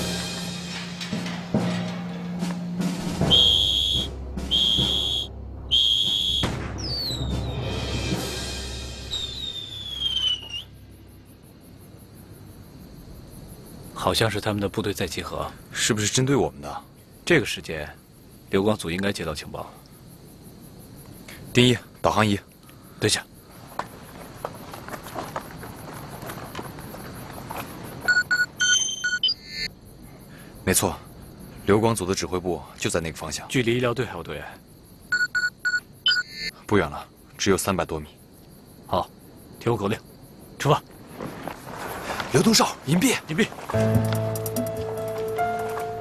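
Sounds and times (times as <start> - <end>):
crickets chirping: 0.0 - 46.0
whistle blasts: 3.2 - 7.8, 9.1 - 10.8, 28.2 - 29.7.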